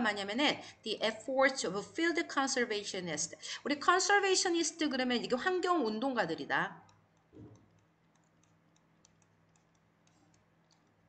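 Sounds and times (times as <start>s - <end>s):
person speaking: 0.0s - 7.7s.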